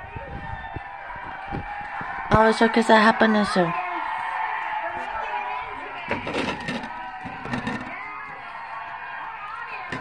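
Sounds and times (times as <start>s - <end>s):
voices talking: 0.0s - 4.2s, 4.8s - 10.0s.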